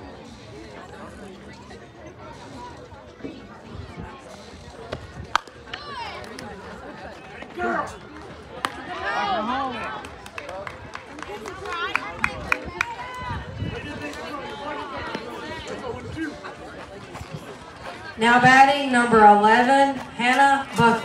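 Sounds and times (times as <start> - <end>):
spectators shouting and cheering: 5.2 - 21.0.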